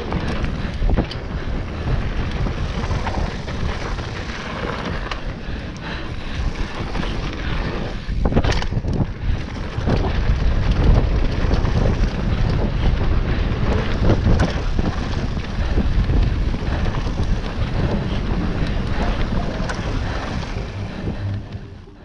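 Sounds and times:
bike knocking and rattling: 0.0s - 21.6s
wind buffeting microphone: 0.0s - 22.0s.

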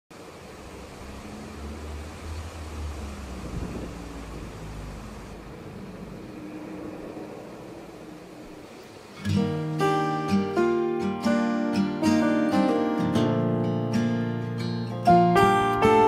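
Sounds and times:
outdoor background rumble: 0.1s - 10.8s.

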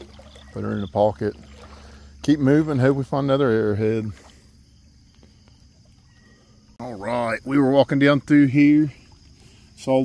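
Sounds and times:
outdoor background: 0.0s - 10.0s.

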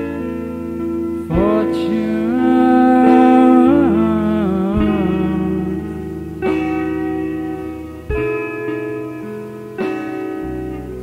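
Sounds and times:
sustained guitar chords: 0.0s - 11.0s.

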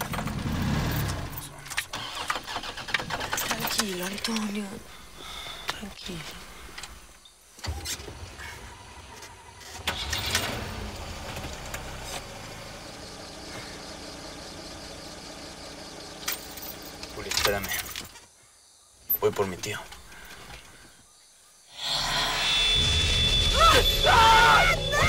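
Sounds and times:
truck engine starting and idling: 0.0s - 4.3s, 9.6s - 17.8s
loud burst of noise: 21.7s - 25.0s.

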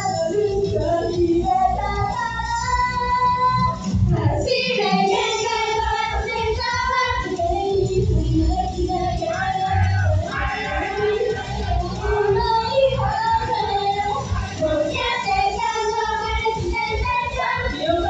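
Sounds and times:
pop backing track with bass beat: 0.0s - 18.0s
women singing into microphones: 0.0s - 18.0s.

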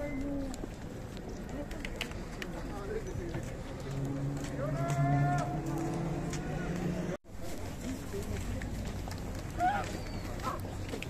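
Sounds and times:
street crowd noise: 0.0s - 11.0s.

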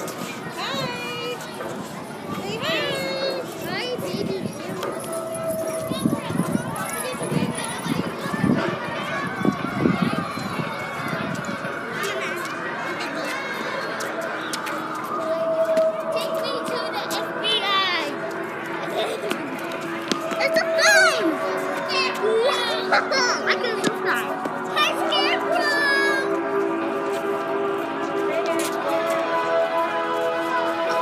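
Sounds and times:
children chattering: 0.0s - 31.0s
background music: 15.0s - 31.0s
footsteps on concrete: 18.1s - 22.6s.

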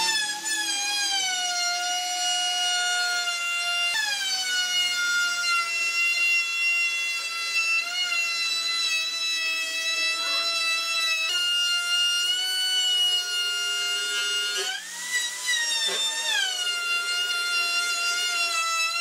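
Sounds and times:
router motor whining cutting wood: 0.0s - 19.0s.

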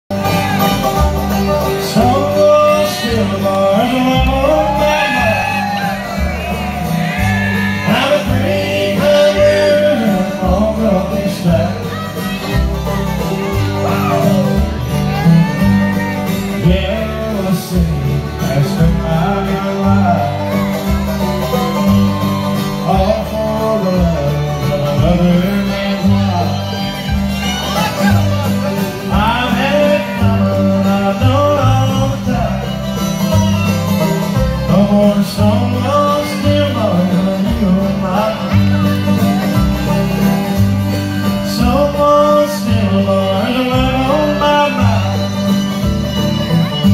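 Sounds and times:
acoustic guitar: 0.0s - 46.9s
banjo: 0.0s - 46.9s
upright bass: 0.0s - 46.9s
fiddle sliding between notes: 0.1s - 10.4s
fiddle: 0.1s - 46.9s
mandolin: 0.1s - 46.9s.

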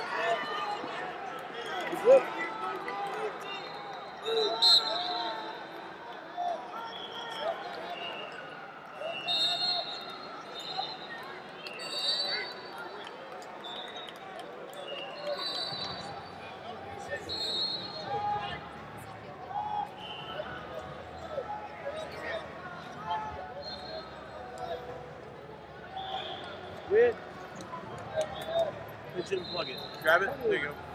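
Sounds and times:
murmur of distant voices: 0.0s - 30.9s
referee whistles: 3.4s - 5.6s, 9.0s - 12.7s, 14.8s - 16.3s, 17.2s - 18.3s, 23.6s - 24.3s, 25.9s - 26.6s, 29.2s - 30.3s.

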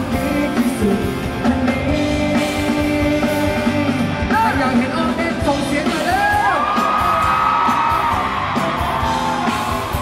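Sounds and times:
live pop-rock band: 0.0s - 10.0s.

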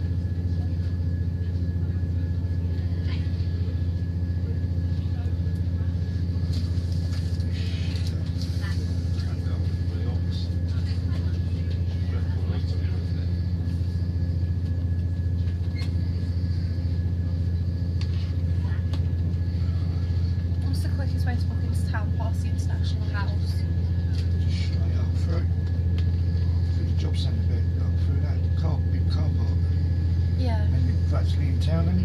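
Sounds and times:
train engine drone inside carriage: 0.0s - 32.0s.

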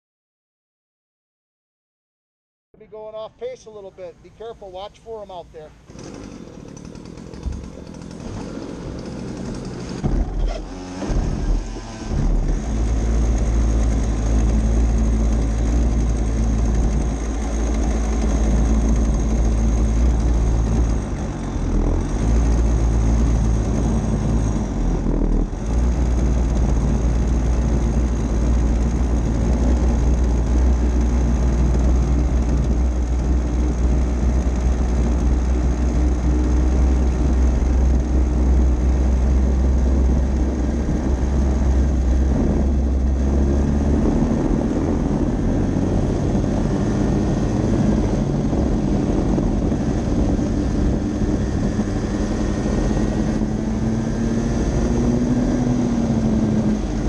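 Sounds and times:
go-kart engine running: 5.7s - 57.0s.

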